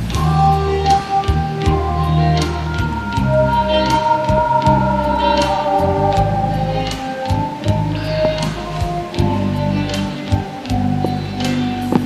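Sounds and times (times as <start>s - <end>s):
pop-rock backing track: 0.0s - 12.0s.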